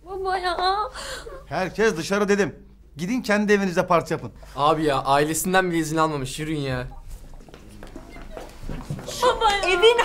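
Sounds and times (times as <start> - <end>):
footsteps and shuffles: 7.0 - 10.0.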